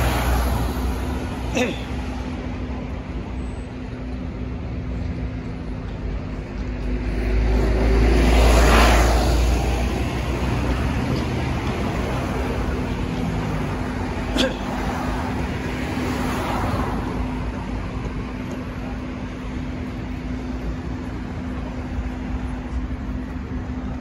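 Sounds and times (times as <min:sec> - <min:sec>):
car passing close: 0:00.0 - 0:01.4, 0:06.9 - 0:17.7
rumble of car traffic: 0:00.0 - 0:24.0.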